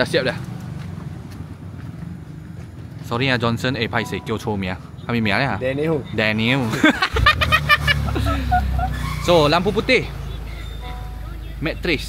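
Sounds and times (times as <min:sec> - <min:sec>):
car engine starting and idling: 0:00.0 - 0:12.0.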